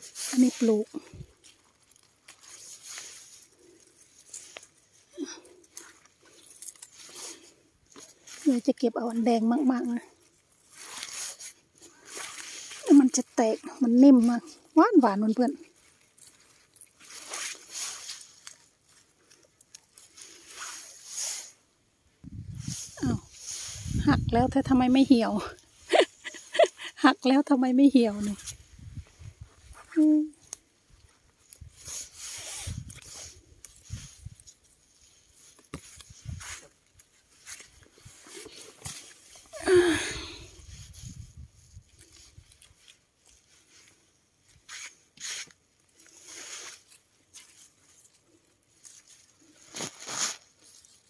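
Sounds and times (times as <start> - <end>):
rustling of plant leaves: 0.0 - 51.0
stems snapping: 5.6 - 7.2.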